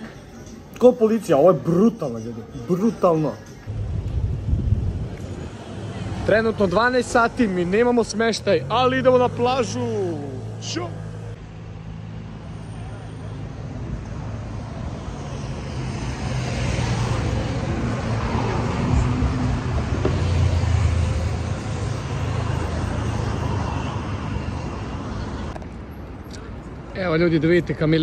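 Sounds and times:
city road traffic: 0.0 - 28.0
vehicle engine hum: 3.4 - 26.9.

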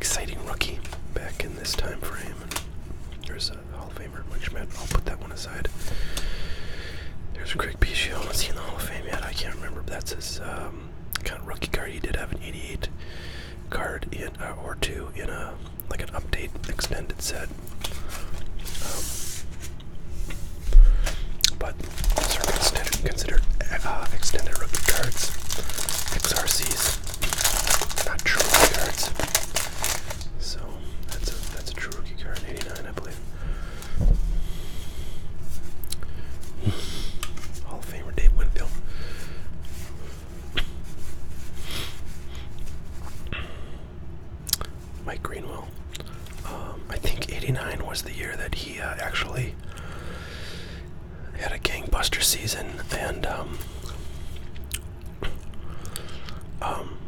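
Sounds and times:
soft whispering: 0.0 - 2.6, 3.2 - 5.8, 7.3 - 13.0, 13.7 - 19.2, 21.4 - 33.4, 37.5 - 38.8, 45.0 - 49.6, 51.3 - 53.9, 56.5 - 57.0
trading cards being shuffled: 17.7 - 30.3
cellophane wrapper crinkling: 21.0 - 33.3
gum chewing: 53.8 - 56.4.

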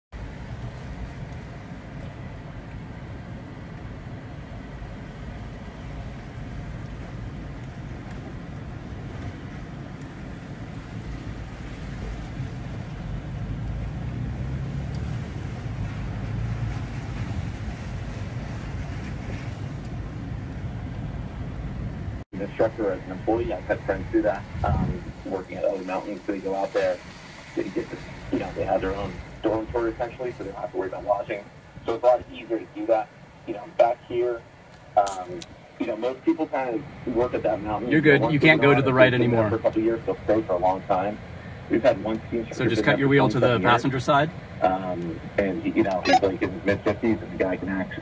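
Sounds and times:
engine and tyre rumble on dirt: 0.1 - 48.0.

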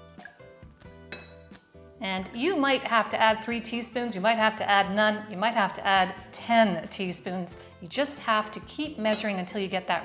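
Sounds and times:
metal spoon clinking glass jug: 1.1 - 1.5, 9.1 - 9.5.

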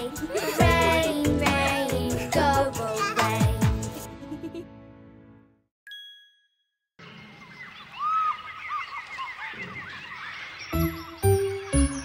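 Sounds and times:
chirping whistling animal calls: 7.0 - 12.0
swooping animal call: 7.5 - 11.3.

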